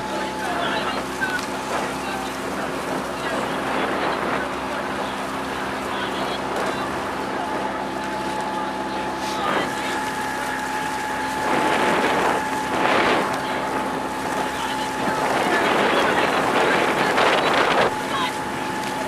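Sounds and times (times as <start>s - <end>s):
outboard motor running: 0.0s - 19.0s
water rushing: 0.0s - 19.0s
wind buffeting microphone: 0.0s - 19.0s.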